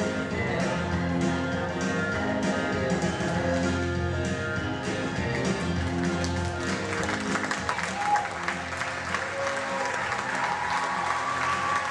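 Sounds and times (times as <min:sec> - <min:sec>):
song backing music with guitar: 0:00.0 - 0:11.9
audience applause and cheering: 0:05.3 - 0:11.9.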